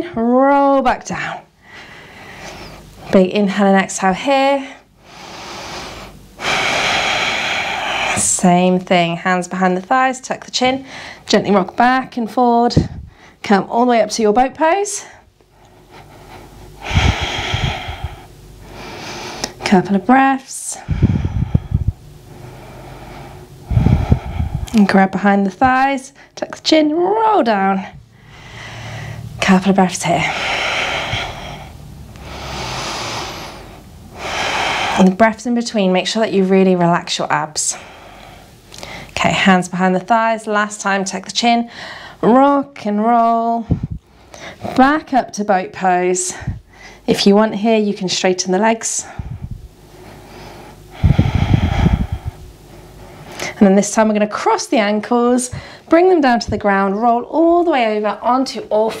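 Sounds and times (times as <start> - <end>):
deep breath: 1.6 - 2.9, 5.0 - 8.2, 15.0 - 19.6, 20.8 - 24.8, 28.0 - 29.4, 30.2 - 35.1, 41.7 - 42.2, 49.0 - 53.6, 55.5 - 55.9
woman exhaling deeply: 16.8 - 18.3, 51.0 - 52.5.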